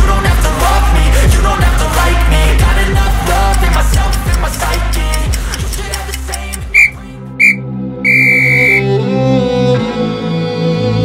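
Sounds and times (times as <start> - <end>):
hip-hop beat: 1.8 - 8.8.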